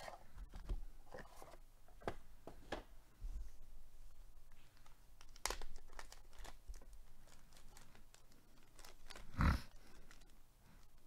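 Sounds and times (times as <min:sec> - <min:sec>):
plastic bag crinkling: 0:04.8 - 0:11.0.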